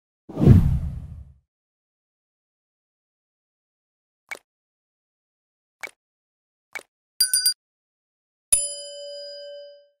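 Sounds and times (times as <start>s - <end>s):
deep whoosh: 0.3s - 1.3s.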